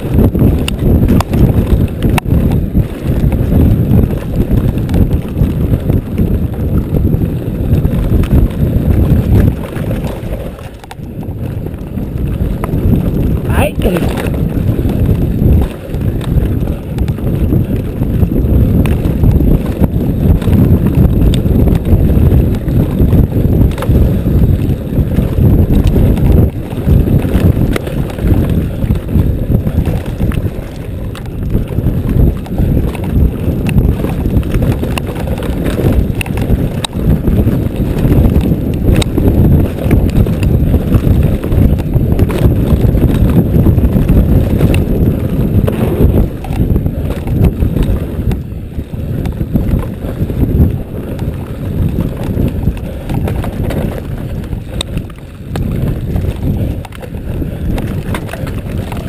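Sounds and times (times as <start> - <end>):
bike rattling over bumps: 0.0 - 59.0
wind buffeting microphone: 0.0 - 59.0.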